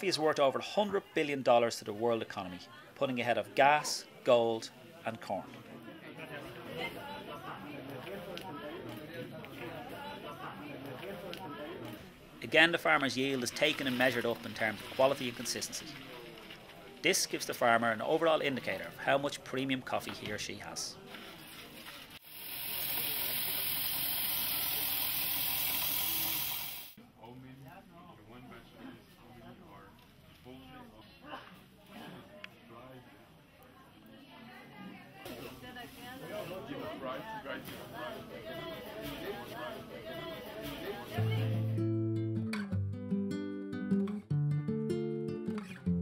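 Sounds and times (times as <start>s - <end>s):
indistinct chatter: 3.7s - 12.4s, 21.0s - 27.0s, 30.8s - 41.5s
coffee huller rushing hiss: 22.2s - 27.0s.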